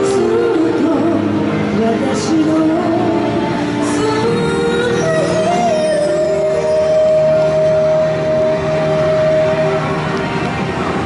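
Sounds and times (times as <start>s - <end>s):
singer holding long note: 0.0s - 11.0s.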